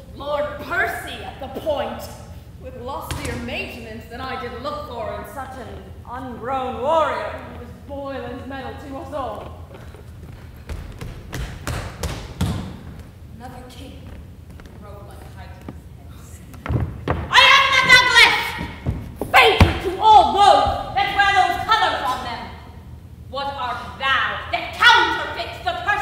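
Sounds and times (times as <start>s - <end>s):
thuds on wooden stage: 10.6s - 13.1s, 16.6s - 20.0s
people shouting: 17.3s - 21.6s.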